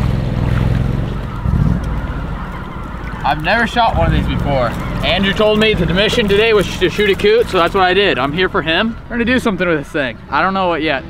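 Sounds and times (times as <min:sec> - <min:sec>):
water sloshing around waders: 0:00.0 - 0:10.2
steady low rumble: 0:00.0 - 0:10.4.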